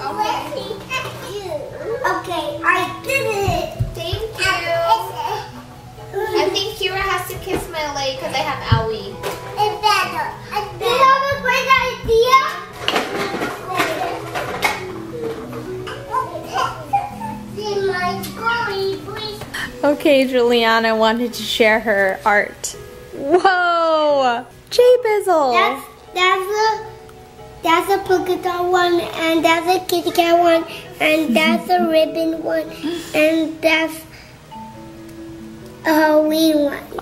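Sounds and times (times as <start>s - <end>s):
toddlers chattering and babbling: 0.0s - 20.0s, 24.4s - 37.0s
child babbling: 31.2s - 32.3s.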